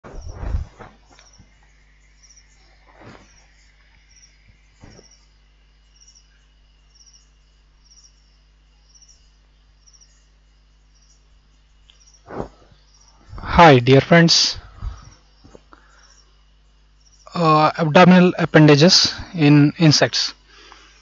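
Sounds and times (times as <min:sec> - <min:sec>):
insect chirping faintly: 0:00.0 - 0:21.0
steady low hum: 0:00.0 - 0:21.0.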